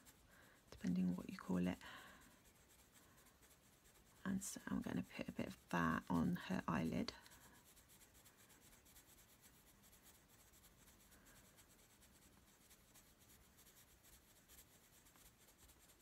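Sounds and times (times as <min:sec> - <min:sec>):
pencil scratching on paper: 0:00.0 - 0:16.0.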